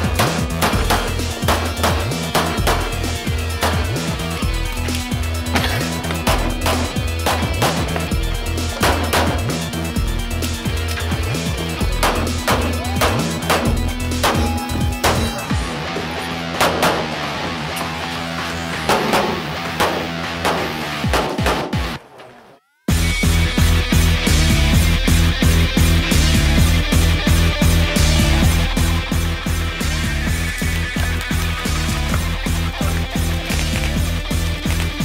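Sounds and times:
background music with beat: 0.0s - 22.0s, 22.9s - 35.0s
pistol shots: 8.8s - 9.6s, 12.0s - 15.6s, 16.5s - 17.4s, 18.7s - 22.0s.

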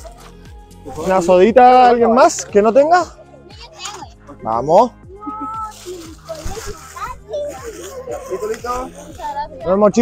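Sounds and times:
children's voices: 3.2s - 4.4s, 5.1s - 10.0s
crowd chatter: 5.1s - 9.7s.

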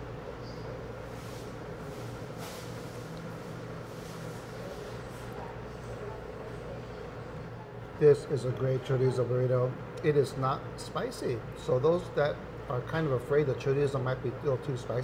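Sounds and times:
cooling equipment hum: 0.0s - 15.0s.

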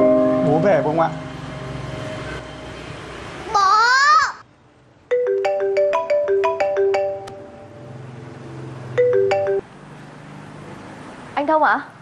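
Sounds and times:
phone ringtone melody: 5.1s - 7.9s, 8.9s - 9.7s.

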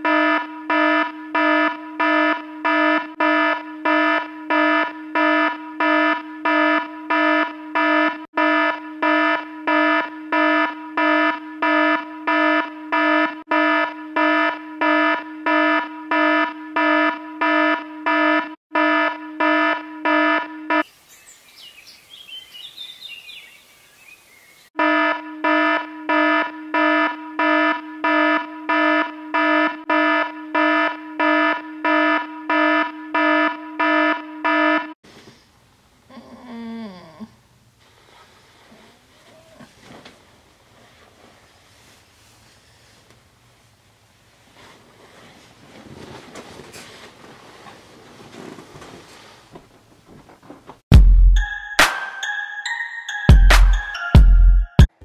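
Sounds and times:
phone alarm beeping: 0.0s - 20.9s, 24.8s - 35.0s.

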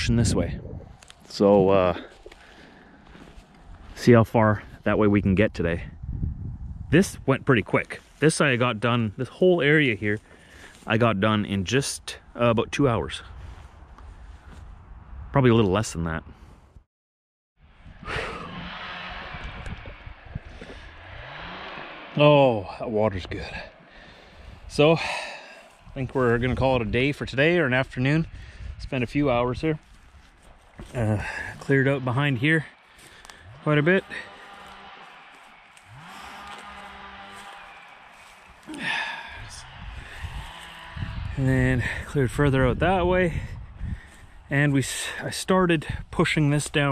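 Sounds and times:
wind buffeting microphone: 0.0s - 2.2s, 3.6s - 7.7s, 13.0s - 16.7s, 17.7s - 22.1s, 22.7s - 32.7s, 38.4s - 46.2s
breathy rush of air: 1.9s - 3.8s, 17.7s - 26.1s, 28.2s - 28.9s, 37.6s - 41.2s
low rumble: 17.6s - 24.8s
man's drawn-out hesitation sound: 30.9s - 32.6s.

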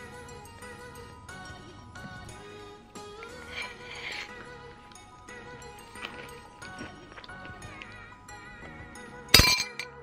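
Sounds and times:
background music: 0.0s - 10.0s
metal spoon clinking on ceramic bowl: 9.3s - 10.0s.

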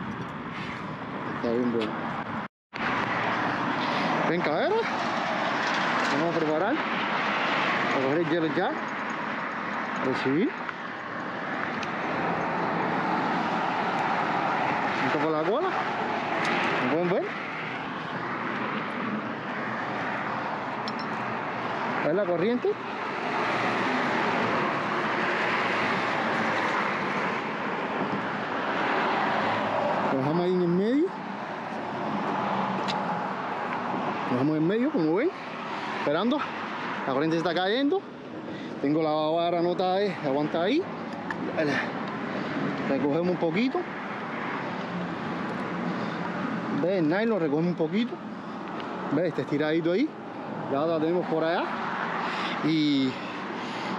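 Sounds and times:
traffic passing: 0.0s - 53.9s.

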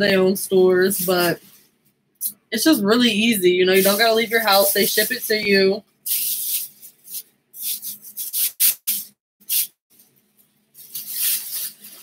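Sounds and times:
clothing rustling: 9.9s - 12.0s.

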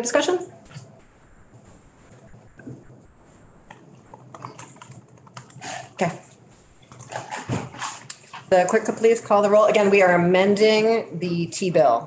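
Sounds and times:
laptop keyboard typing: 3.6s - 5.8s.

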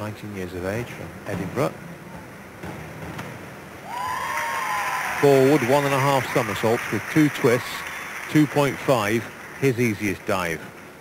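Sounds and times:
crowd and hall noise: 0.0s - 11.0s.

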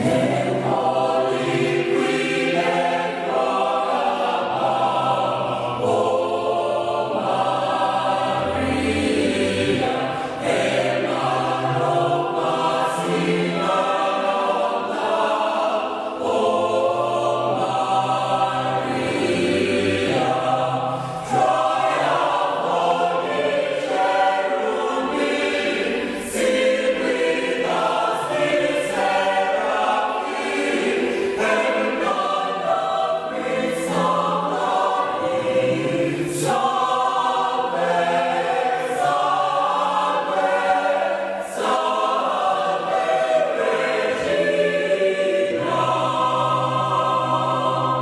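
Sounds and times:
choir singing a hymn: 0.0s - 48.0s.

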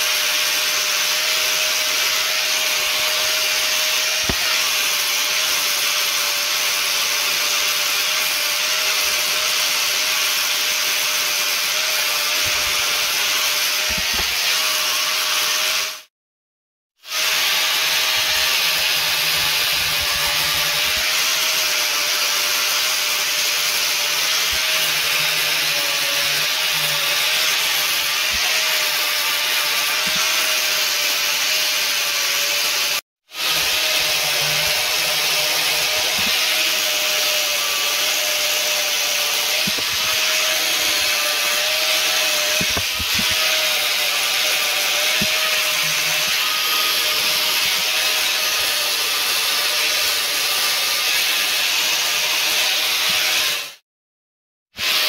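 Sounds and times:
angle grinder sanding wood: 0.0s - 16.1s, 17.0s - 53.8s.

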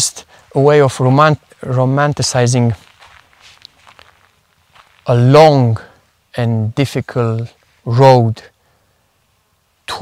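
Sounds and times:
footsteps on dirt path: 0.0s - 6.0s.

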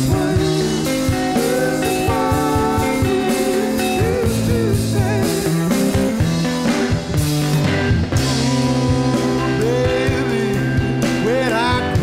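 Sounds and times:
electric guitar bending lead line: 0.0s - 12.0s
rock band playing live: 0.0s - 12.0s.

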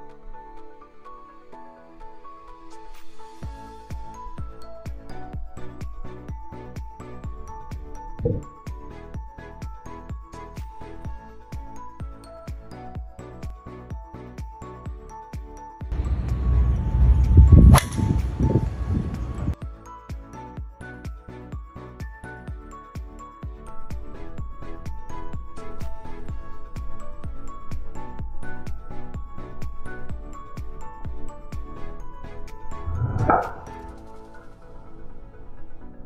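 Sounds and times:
music playing: 0.0s - 36.0s
golf club swing rush: 17.5s - 18.5s
golf club striking ball: 17.6s - 18.4s, 32.9s - 33.9s
golf ball impact crack: 17.7s - 18.2s.

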